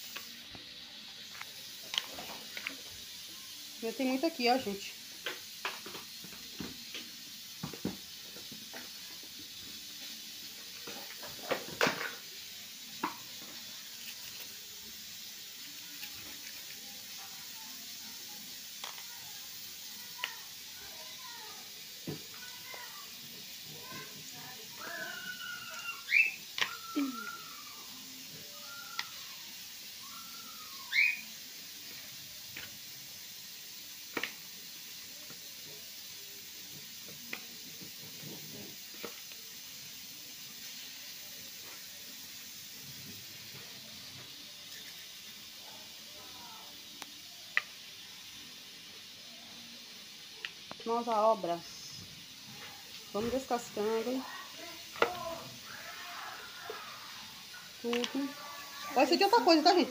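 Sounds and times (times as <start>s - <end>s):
peanuts being shelled by hand: 0.0s - 49.3s, 49.9s - 59.9s.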